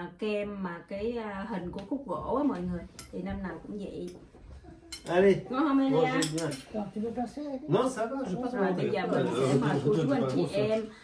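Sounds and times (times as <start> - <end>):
woman talking: 0.0 - 4.3
cutlery clinking on plates: 4.9 - 5.2, 6.0 - 6.8.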